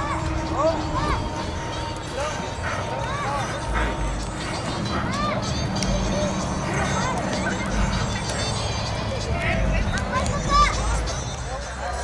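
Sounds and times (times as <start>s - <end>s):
background voices outdoors: 0.0s - 12.0s.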